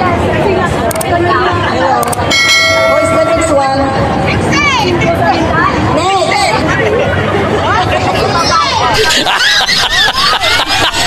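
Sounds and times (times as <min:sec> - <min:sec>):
chatter: 0:00.0 - 0:11.0
bell ringing: 0:02.3 - 0:04.4.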